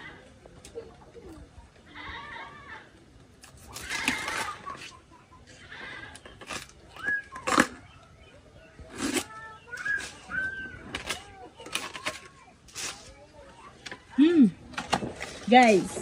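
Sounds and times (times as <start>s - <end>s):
dry leaves crackling and snapping: 3.4s - 5.0s.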